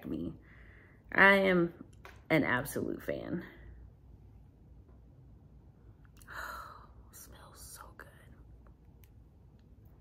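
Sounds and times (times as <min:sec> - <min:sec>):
woman whispering: 0:06.3 - 0:08.5.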